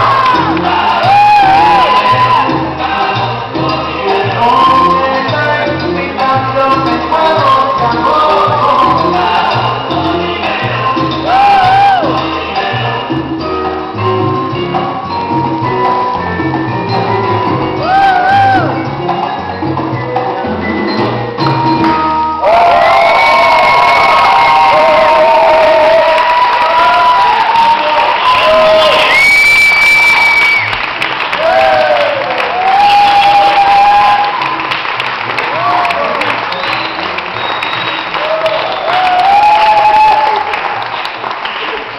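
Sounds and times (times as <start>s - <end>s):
audience applauding and cheering: 0.0s - 3.4s, 16.2s - 19.1s, 21.4s - 41.9s
salsa music: 0.0s - 41.9s.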